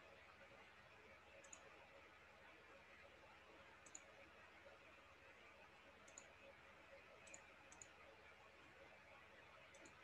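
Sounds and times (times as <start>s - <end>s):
faint double clicks: 1.4s - 1.7s, 3.8s - 4.1s, 6.0s - 6.3s, 7.2s - 8.0s, 9.7s - 10.0s.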